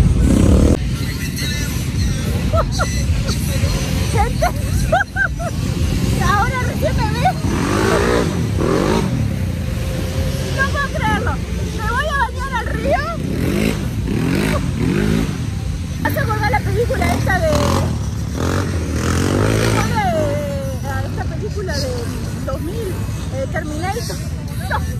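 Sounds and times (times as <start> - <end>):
dirt bike engines revving: 0.0 - 24.9
people talking: 0.8 - 8.4, 10.4 - 13.3, 15.5 - 17.9, 19.4 - 24.9.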